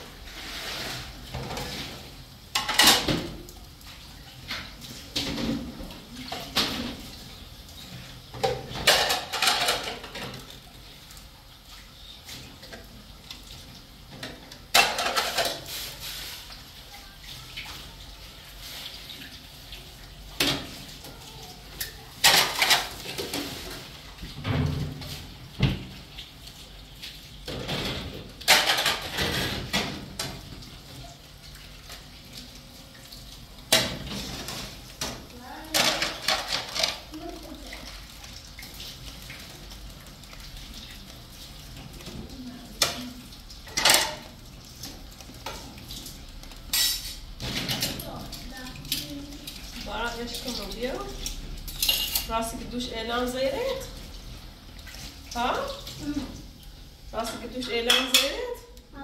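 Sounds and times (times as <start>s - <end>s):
plates and cutlery clinking: 8.4s - 10.4s, 14.2s - 15.8s, 21.8s - 23.7s, 27.5s - 30.4s, 46.7s - 48.0s, 51.2s - 52.3s, 57.2s - 58.4s.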